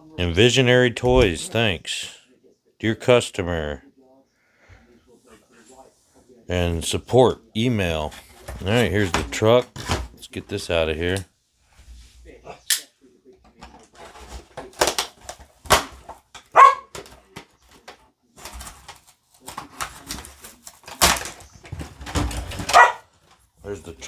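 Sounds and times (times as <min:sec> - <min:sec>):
cardboard and plastic packaging crinkling: 0:13.8 - 0:16.3, 0:16.9 - 0:23.5.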